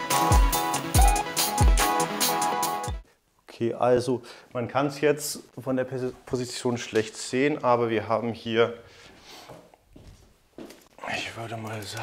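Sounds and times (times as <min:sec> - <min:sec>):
footsteps on wooden floor: 0:09.0 - 0:10.9.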